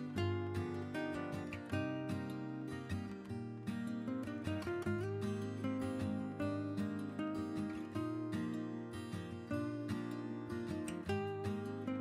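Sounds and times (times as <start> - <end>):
strummed acoustic guitar music: 0.0 - 12.0.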